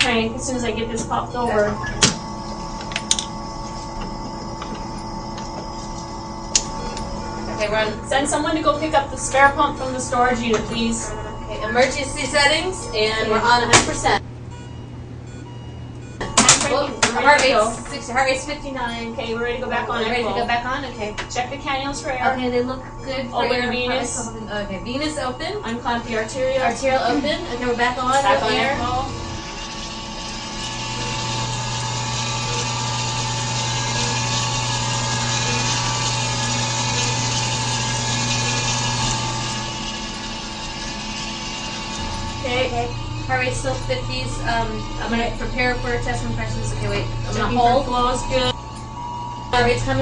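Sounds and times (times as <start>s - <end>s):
woman speaking: 0.0s - 1.8s, 7.6s - 14.2s, 16.3s - 29.2s, 42.4s - 48.6s, 49.6s - 50.0s
low electrical hum: 0.0s - 50.0s
hand-cranked pump whirring: 1.5s - 11.0s, 26.7s - 48.9s.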